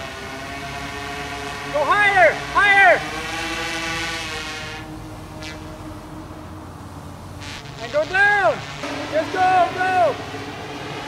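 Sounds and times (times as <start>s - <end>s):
drone propellers humming: 0.0s - 11.0s.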